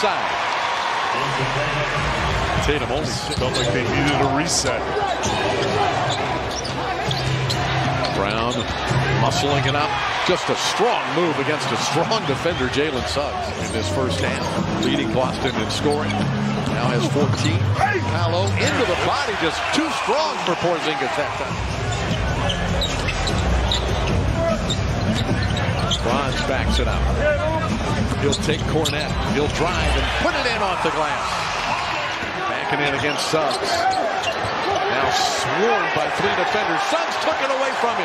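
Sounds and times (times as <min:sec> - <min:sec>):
arena crowd noise: 0:00.0 - 0:38.0
sneaker squeaks: 0:03.2 - 0:03.9, 0:05.1 - 0:09.0, 0:15.8 - 0:16.3, 0:21.9 - 0:26.5, 0:28.1 - 0:29.2, 0:32.8 - 0:34.9.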